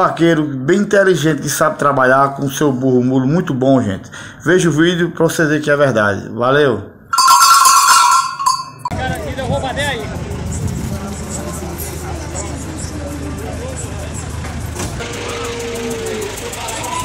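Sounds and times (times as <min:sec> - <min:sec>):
distant voices: 0:07.2 - 0:17.0.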